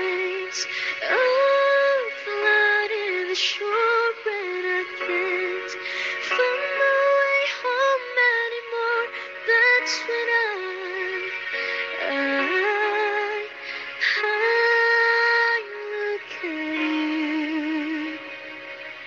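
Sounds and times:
woman singing a pop ballad: 0.0 - 18.4.

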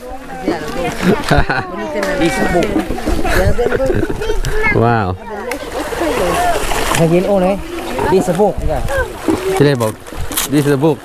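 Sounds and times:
fish thrashing water: 0.0 - 11.0
people's voices: 0.0 - 11.0.

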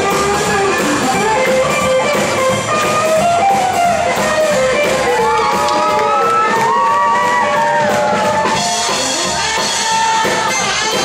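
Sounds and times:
swing band music: 0.0 - 11.0
crowd whooping and cheering: 4.5 - 11.0.

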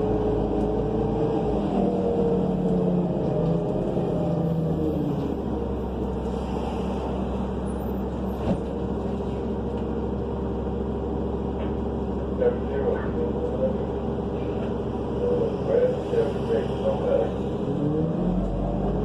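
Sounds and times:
bus engine drone: 0.0 - 19.0.

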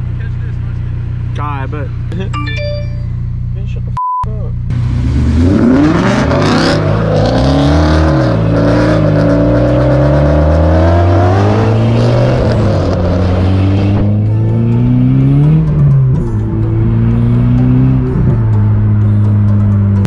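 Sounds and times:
car engine accelerating: 0.0 - 20.0.

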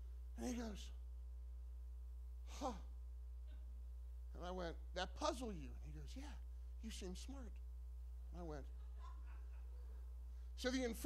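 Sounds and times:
steady low hum: 0.0 - 11.0
man saying huh: 2.5 - 2.9.

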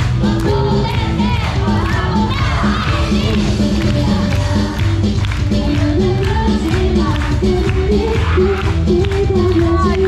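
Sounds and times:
loud pop dance music: 0.0 - 10.0
audience shouting and cheering: 0.6 - 3.7, 8.0 - 8.9.

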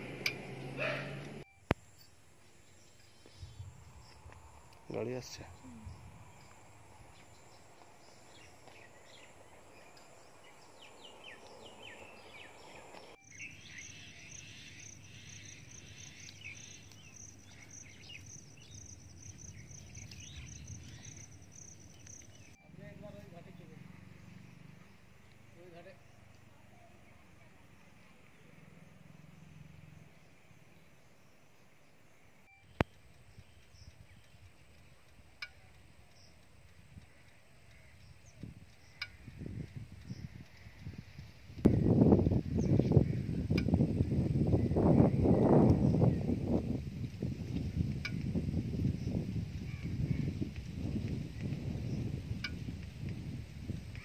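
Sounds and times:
birds chirping: 0.0 - 46.8
low rumble: 3.3 - 16.1
sharp clicks: 32.5 - 41.8.

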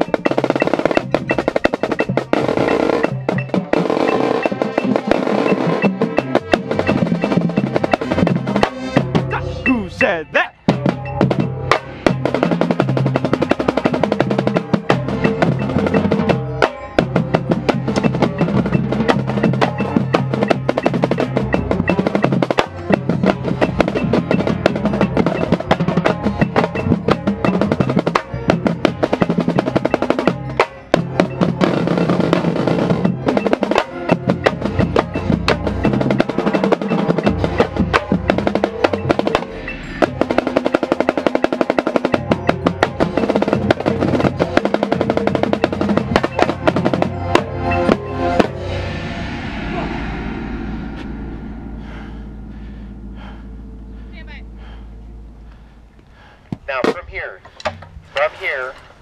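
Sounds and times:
tenor drums: 0.0 - 59.0.

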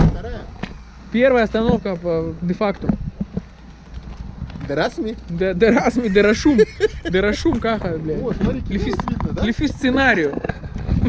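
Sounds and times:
man speaking: 4.6 - 10.5.

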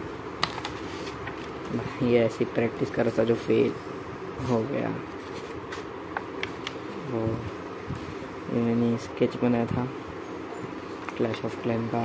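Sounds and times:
steady buzzing hum: 0.0 - 12.0.

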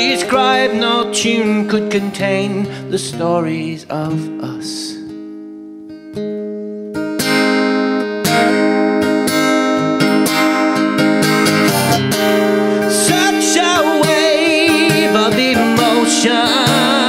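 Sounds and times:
acoustic guitar strumming: 0.0 - 17.0.

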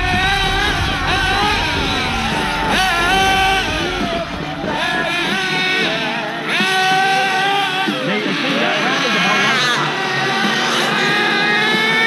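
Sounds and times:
low rumble: 0.0 - 6.9
toy car motor whining: 6.5 - 12.0.

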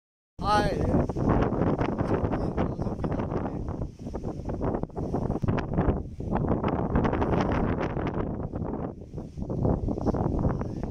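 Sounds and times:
wind buffeting microphone: 0.4 - 10.9.

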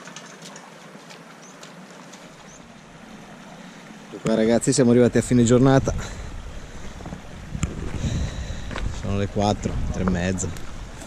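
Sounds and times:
wind buffeting microphone: 5.0 - 11.0.

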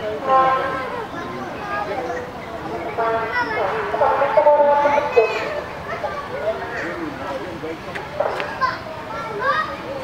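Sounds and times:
children talking and calling out: 0.2 - 10.0.

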